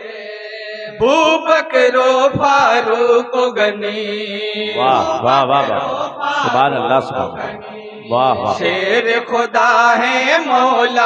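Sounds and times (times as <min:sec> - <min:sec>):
man singing melody: 0:00.0 - 0:11.0
men chanting unaccompanied: 0:00.6 - 0:11.0.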